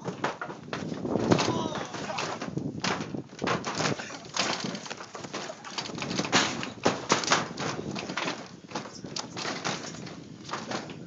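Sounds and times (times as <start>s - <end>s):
bodies thumping on trampoline: 0.0s - 11.0s
trampoline springs rattling: 0.0s - 11.0s.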